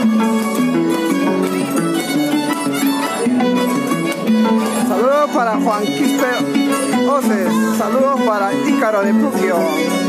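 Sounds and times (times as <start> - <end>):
harp bass line: 0.0 - 10.0
violin sliding melody: 0.0 - 10.0.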